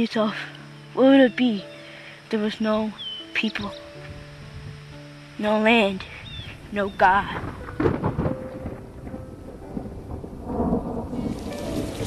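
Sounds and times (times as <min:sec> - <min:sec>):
rain-like hiss: 0:00.0 - 0:12.0.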